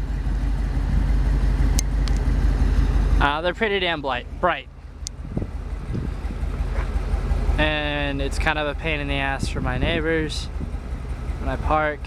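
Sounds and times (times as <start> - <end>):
vehicle engine idling: 0.0 - 12.0
wind noise on microphone: 5.1 - 6.4, 9.1 - 10.8.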